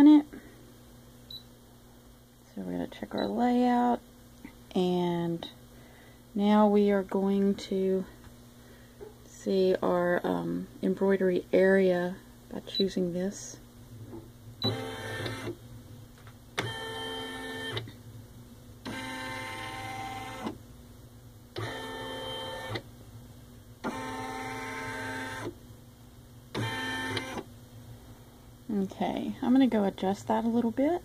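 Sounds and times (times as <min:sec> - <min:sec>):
embroidery machine motor runs: 0:14.6 - 0:15.6, 0:18.8 - 0:20.6, 0:23.8 - 0:25.6, 0:26.5 - 0:27.4.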